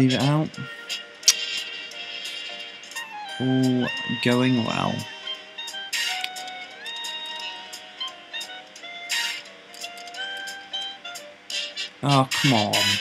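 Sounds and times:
electronic slot game music: 0.0 - 13.0
short clicks: 1.2 - 1.5.

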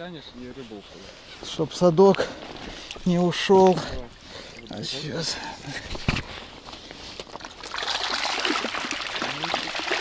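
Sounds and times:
water splashing and trickling: 2.6 - 10.0.

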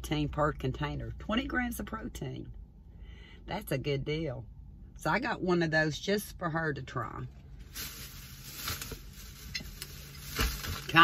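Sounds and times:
packaging rustling: 7.7 - 11.0.

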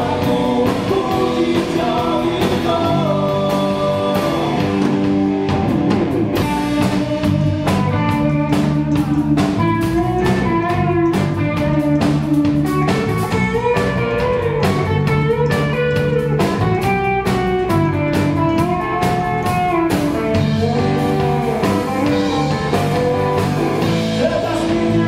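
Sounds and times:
bass guitar: 0.0 - 25.0
drum kit steady beat: 0.0 - 25.0
electric guitar: 0.0 - 25.0.

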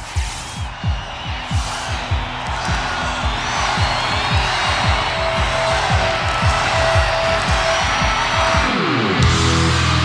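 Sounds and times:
fast kick drum: 0.0 - 8.8
distorted electric guitar: 3.8 - 10.0.

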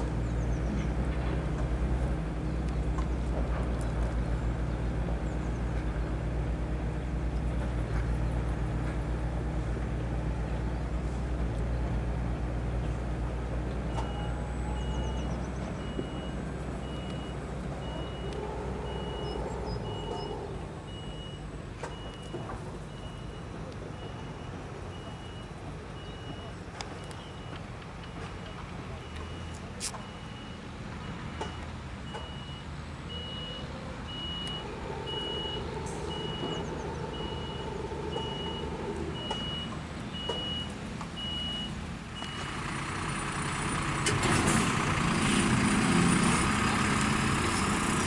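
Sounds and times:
heavy vehicle engine droning: 0.0 - 48.0
reversing alarm beeping: 13.9 - 42.5.

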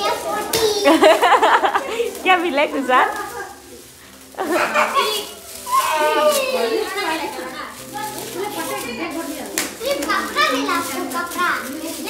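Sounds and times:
children chattering excitedly: 0.0 - 12.0
foil gift wrap crackling: 0.0 - 12.0.

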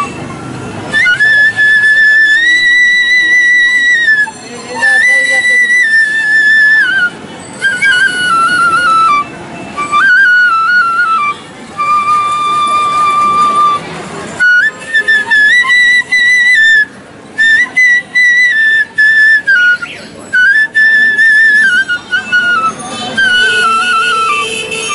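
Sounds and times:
bamboo flute long high note: 0.0 - 24.9.

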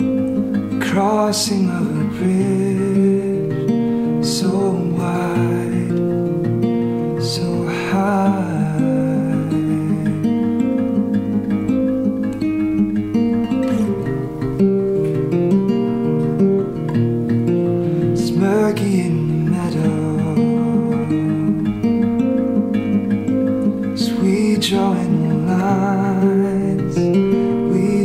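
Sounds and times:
fingerstyle acoustic guitar: 0.0 - 28.0.

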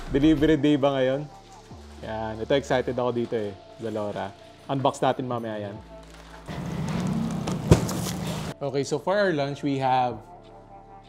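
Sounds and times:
background music: 0.0 - 11.0
plastic bag rustling and crackling: 6.0 - 8.6.

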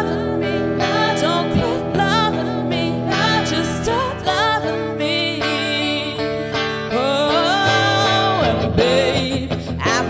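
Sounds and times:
backing track with guitar: 0.0 - 10.0
woman singing a pop ballad: 0.0 - 10.0.

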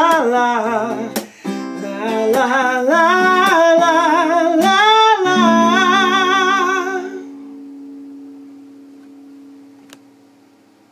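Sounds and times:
acoustic guitar chord ringing: 0.6 - 10.8.

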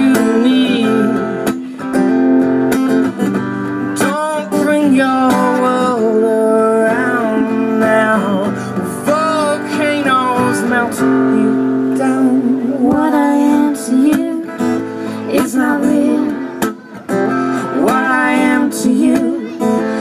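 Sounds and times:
acoustic guitar strumming: 0.0 - 20.0
person singing: 0.0 - 20.0.

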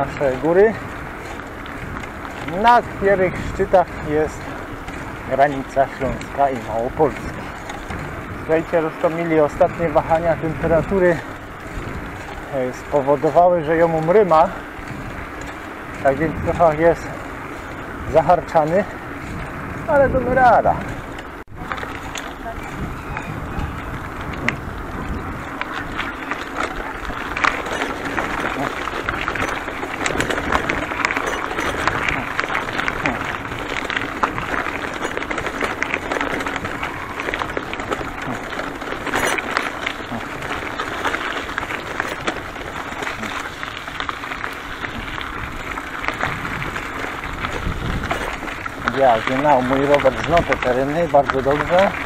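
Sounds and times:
bicycle tyres rolling on gravel: 0.0 - 52.0
bike rattling over bumps: 0.0 - 52.0.

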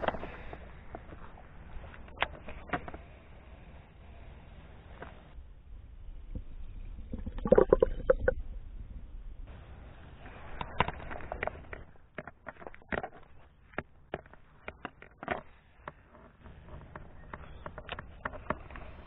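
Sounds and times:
water gurgling and sloshing: 6.0 - 9.0
handling knocks and clicks: 10.6 - 19.0.

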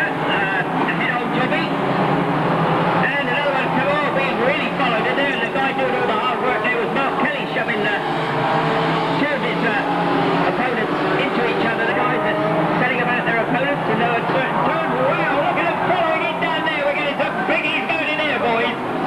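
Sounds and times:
people's voices: 0.0 - 2.0, 2.9 - 8.2, 8.8 - 19.0
racing car engines revving: 0.0 - 19.0.

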